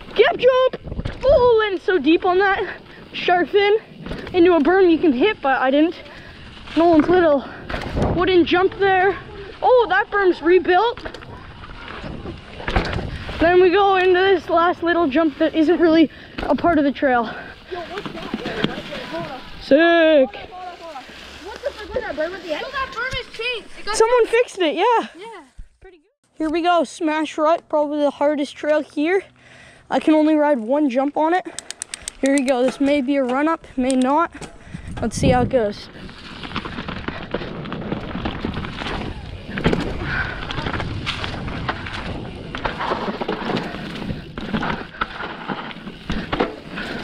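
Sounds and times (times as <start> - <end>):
bike tyres rolling through dry leaves: 0.0 - 25.5, 34.6 - 47.0.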